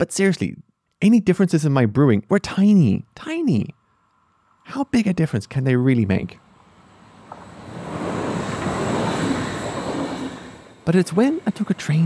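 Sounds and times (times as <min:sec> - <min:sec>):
moving train rumble: 0:04.8 - 0:12.0.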